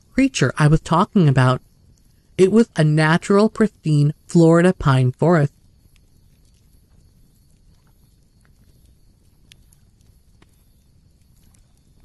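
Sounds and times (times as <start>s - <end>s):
faint low rumble: 0.0s - 12.0s.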